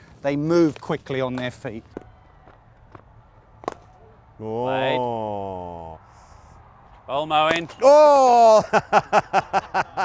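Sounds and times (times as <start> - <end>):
cricket bat striking ball: 1.4 - 4.0.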